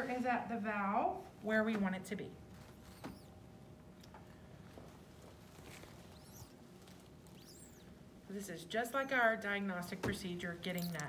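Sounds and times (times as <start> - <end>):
faint high squeaks: 2.8 - 3.4, 5.6 - 8.0, 10.6 - 11.0.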